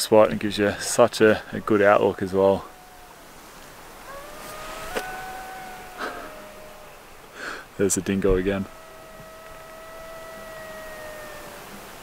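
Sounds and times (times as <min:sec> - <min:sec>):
distant dingo howling: 0:00.8 - 0:12.0.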